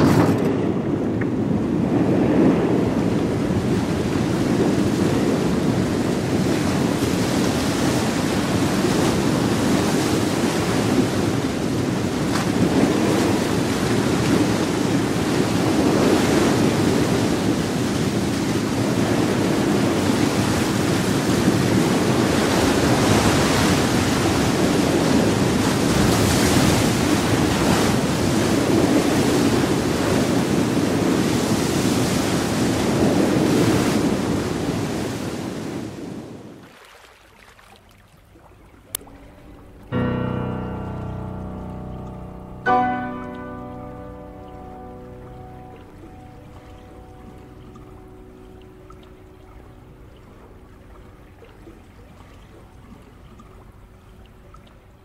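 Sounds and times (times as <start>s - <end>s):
sea waves washing: 0.0s - 55.0s.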